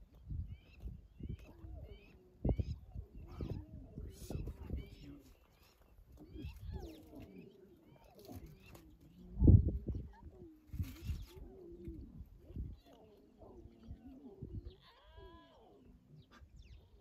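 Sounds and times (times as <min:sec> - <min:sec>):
lion cubs mewing and whining: 0:00.2 - 0:17.0.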